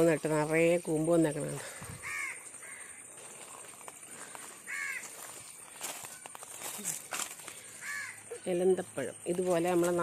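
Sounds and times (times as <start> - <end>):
faint garden background: 0.0 - 10.0.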